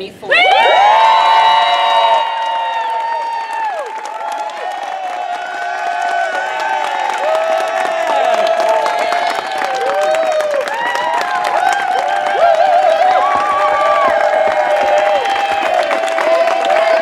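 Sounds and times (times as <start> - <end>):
high-pitched whoops and screams: 0.3 - 17.0
people cheering and clapping: 0.3 - 17.0.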